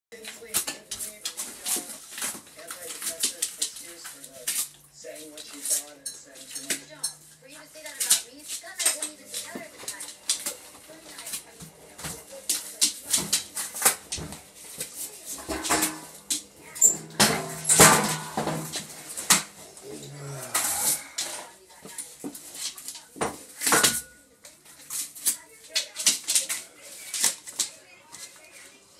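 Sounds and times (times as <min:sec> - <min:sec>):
dog tearing dry scraps: 0:00.1 - 0:15.4, 0:24.7 - 0:28.8
dog tearing cardboard: 0:00.2 - 0:06.7.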